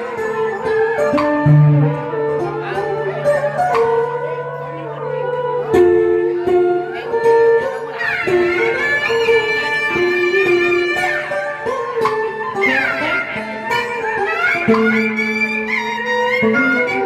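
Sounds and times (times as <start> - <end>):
electric guitar with sliding notes: 0.0 - 17.0.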